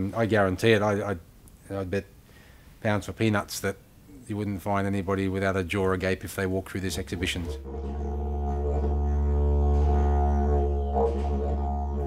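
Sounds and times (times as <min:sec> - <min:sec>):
didgeridoo drone: 0:07.4 - 0:12.0.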